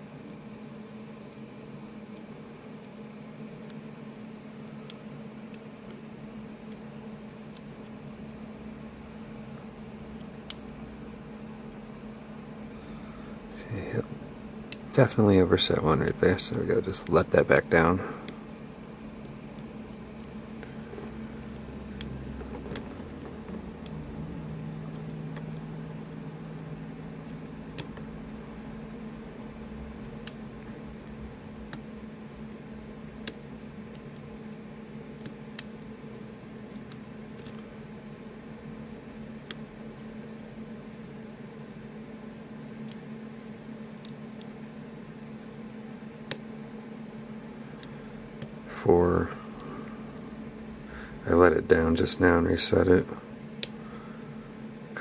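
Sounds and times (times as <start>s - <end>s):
low hum: 4.3s - 41.1s.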